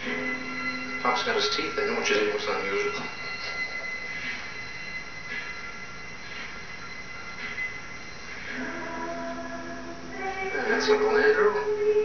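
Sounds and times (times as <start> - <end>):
machine running with high whine: 0.0 - 12.0.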